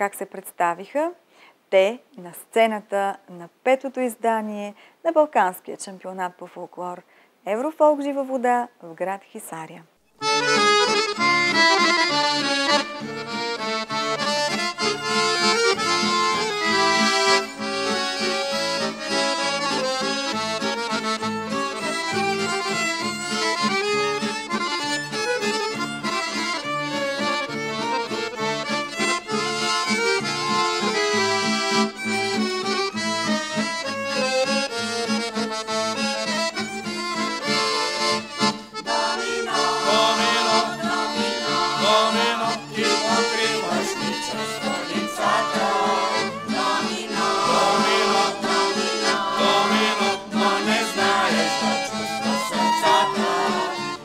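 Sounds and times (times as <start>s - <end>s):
accordion: 10.0s - 54.0s
acoustic guitars strumming rhythm: 10.2s - 54.0s
violin: 10.2s - 54.0s.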